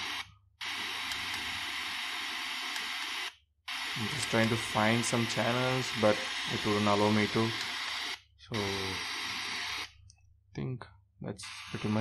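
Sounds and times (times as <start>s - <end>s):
radio static hiss: 3.8s - 8.0s, 11.3s - 12.0s.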